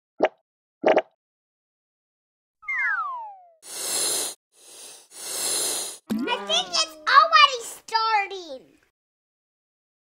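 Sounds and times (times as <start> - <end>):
electronic blips: 6.1 - 6.5.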